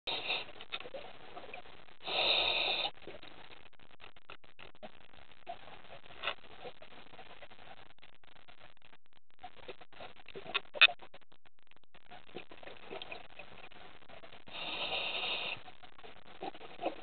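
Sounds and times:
faint underwater clicks and crackles: 0.1 - 17.0.

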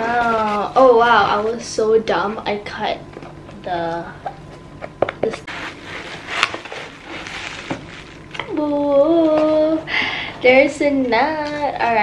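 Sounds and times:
plastic packaging rustling: 5.2 - 8.7
sharp crackle: 5.4 - 8.5.

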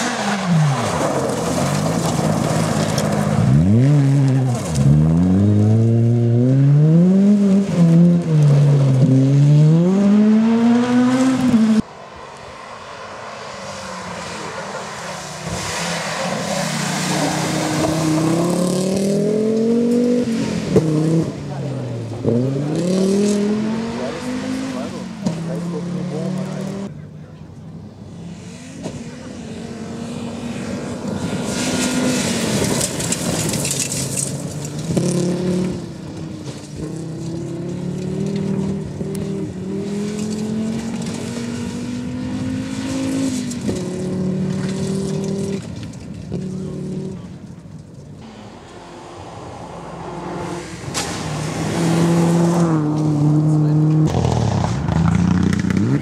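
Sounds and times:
rally car engines at high revs: 0.0 - 27.1, 27.9 - 56.0.

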